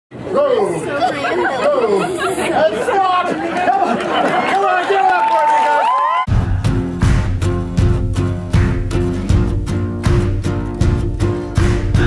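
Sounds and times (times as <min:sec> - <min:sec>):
crowd chattering: 0:00.1 - 0:05.7.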